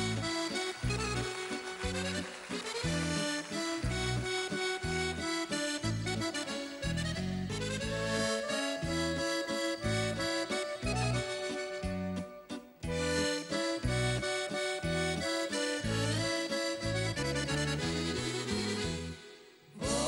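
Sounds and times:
accordion melody: 0.0 - 20.0
electric bass line: 3.8 - 12.2, 15.8 - 19.2.

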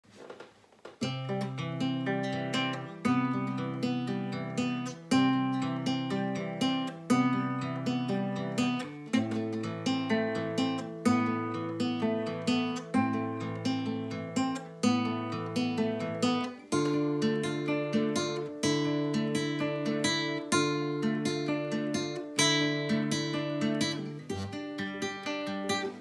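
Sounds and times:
fingerpicked classical guitar: 0.9 - 26.0.

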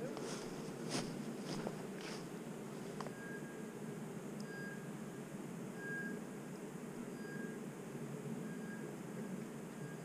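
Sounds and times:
footsteps through grass and brush: 0.0 - 3.0.

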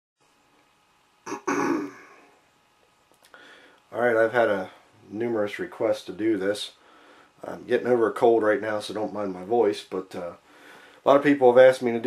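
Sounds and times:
man clearing his throat: 1.3 - 2.2.

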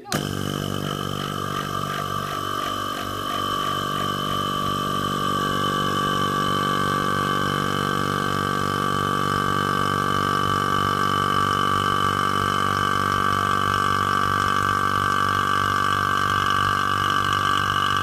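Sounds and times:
steady high whine: 0.0 - 18.0
vacuum pump motor hum: 0.0 - 18.0.

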